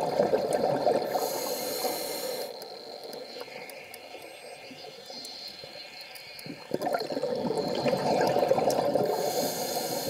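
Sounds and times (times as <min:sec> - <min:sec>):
exhaled bubbles: 0:00.0 - 0:01.3, 0:06.4 - 0:10.0.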